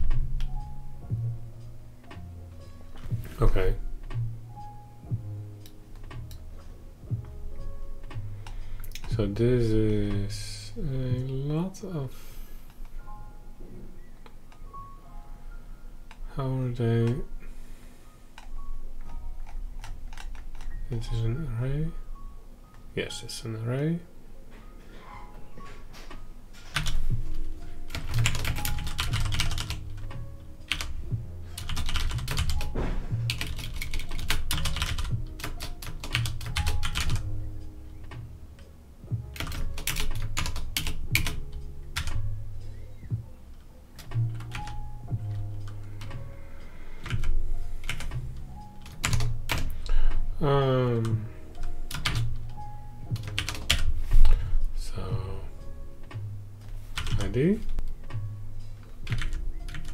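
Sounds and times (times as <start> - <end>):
quiet background music: 0.0 - 59.9
keyboard typing: 18.4 - 21.1, 26.6 - 37.4, 39.3 - 42.3, 43.1 - 46.3, 47.0 - 50.3, 51.0 - 54.4, 56.9 - 58.2, 58.8 - 59.9.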